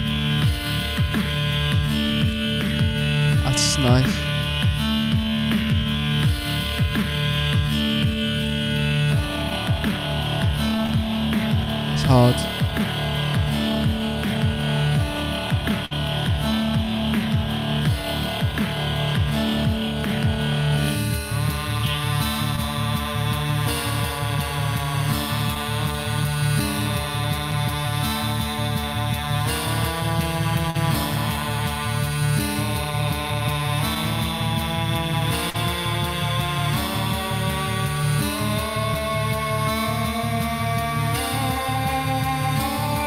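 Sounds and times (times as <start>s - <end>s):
beatbox drum and bass loops: 3.4s - 4.2s
looped vocal melodies: 3.4s - 4.3s, 11.9s - 12.7s.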